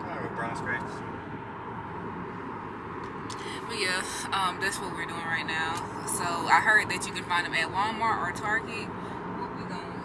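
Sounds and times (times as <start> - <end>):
road noise hum: 0.0 - 10.0
woman talking: 3.4 - 10.0.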